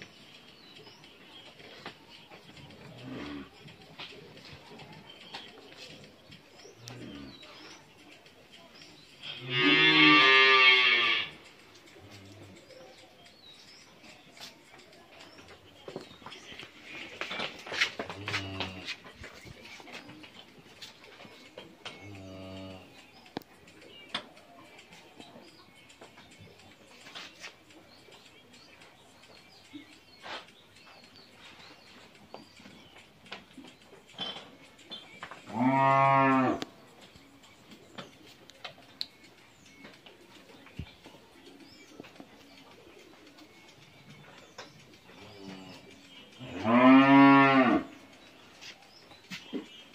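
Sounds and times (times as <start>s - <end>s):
cow mooing: 9.4s - 11.4s, 35.5s - 36.7s, 46.5s - 47.9s.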